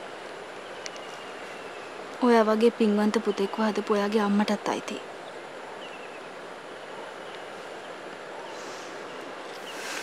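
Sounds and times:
soft outdoor hiss: 0.0 - 10.0
faint bird chirps: 0.6 - 2.0, 5.2 - 10.0.

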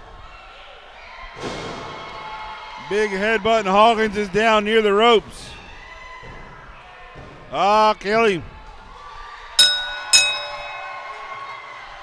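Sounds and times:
ring bell ringing: 9.6 - 11.6.

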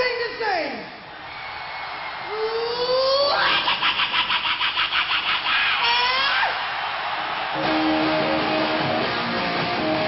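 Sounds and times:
electric guitar chord: 7.6 - 10.0.

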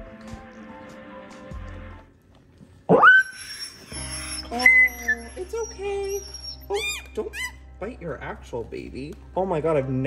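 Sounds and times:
soft background music: 0.0 - 10.0
dog squealing: 2.9 - 7.7.

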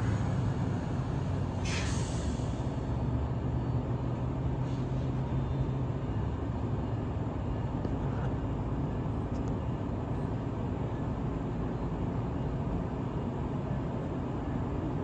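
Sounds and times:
train engine hum and rumble: 0.0 - 15.0.

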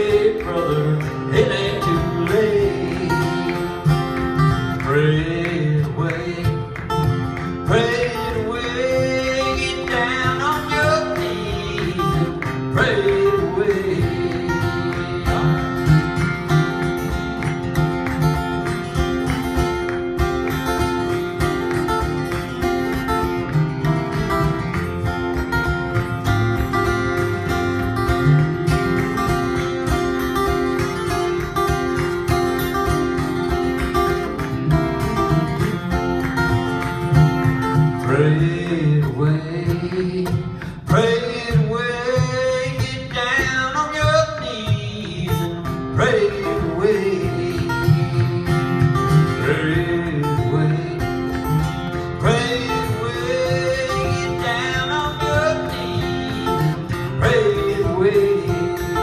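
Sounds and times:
man singing: 0.0 - 16.9, 37.7 - 59.0
acoustic guitars strumming: 0.0 - 59.0.

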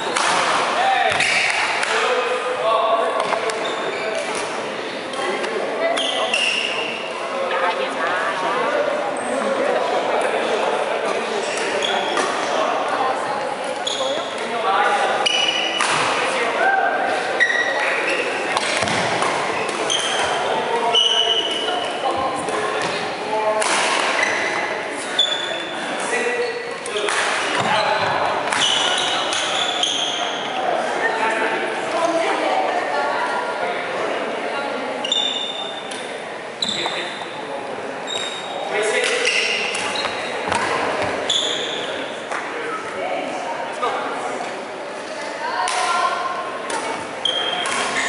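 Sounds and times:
voices in echoing hall: 0.0 - 48.0
shoes squeaking on wooden floor: 36.6 - 37.2, 38.0 - 38.6.

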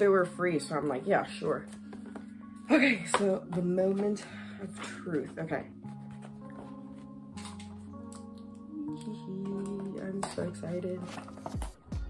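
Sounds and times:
background music with held chords: 0.0 - 12.0.

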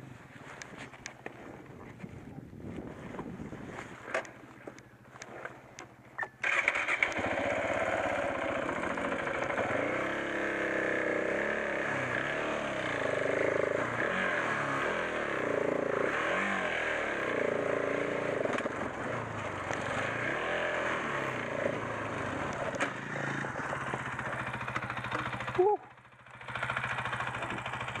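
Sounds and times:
motorcycle engine revving: 6.2 - 28.0.

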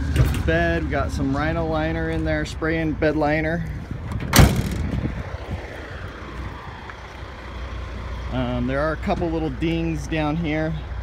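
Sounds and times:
distant vehicle engine rumble: 0.0 - 11.0.

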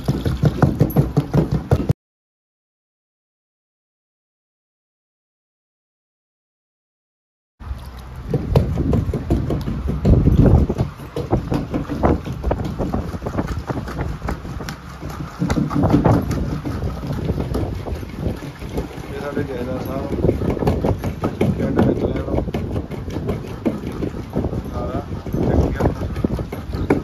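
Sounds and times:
wooden pestle pounding in mortar: 0.0 - 1.9, 8.3 - 27.0.

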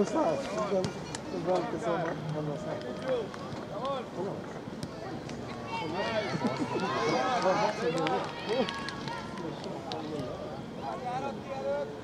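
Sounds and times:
voices talking and calling out: 0.0 - 12.0.

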